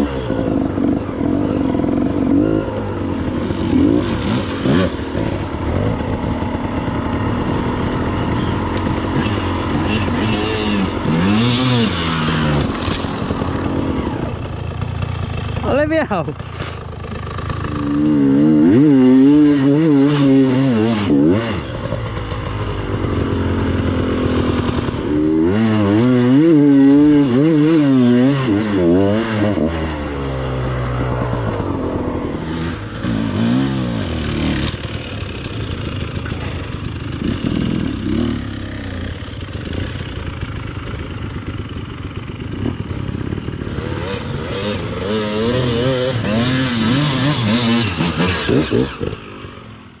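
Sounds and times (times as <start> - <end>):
dirt bike engine revving: 0.0 - 50.0.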